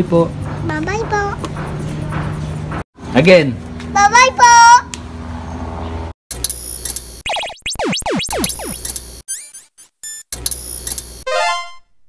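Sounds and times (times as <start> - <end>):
blips climbing in pitch: 7.2 - 10.3.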